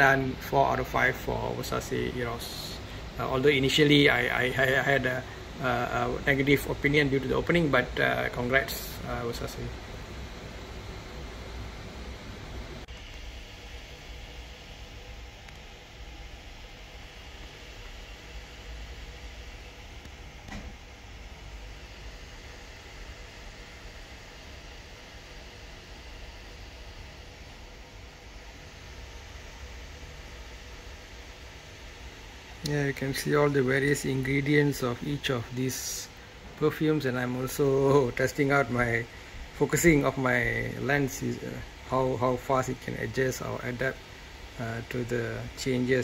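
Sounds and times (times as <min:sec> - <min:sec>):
low hum and hiss: 0:00.0 - 0:46.0.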